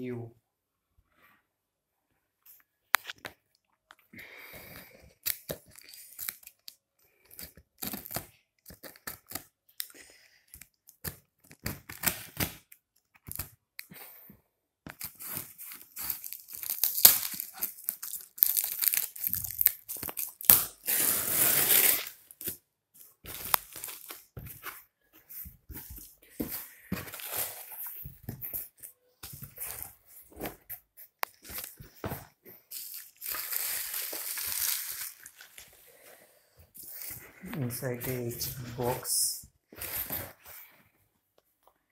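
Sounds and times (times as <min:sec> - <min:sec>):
cardboard and plastic crinkling: 0:14.9 - 0:20.5, 0:22.4 - 0:30.7, 0:31.3 - 0:35.8
packing tape ripping: 0:15.0 - 0:22.6, 0:32.7 - 0:35.6
long tearing sounds: 0:15.1 - 0:22.3.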